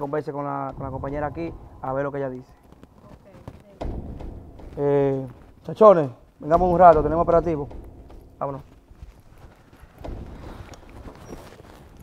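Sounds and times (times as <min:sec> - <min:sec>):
footsteps on concrete: 0:00.2 - 0:12.0
knocks and low thuds: 0:00.5 - 0:12.0.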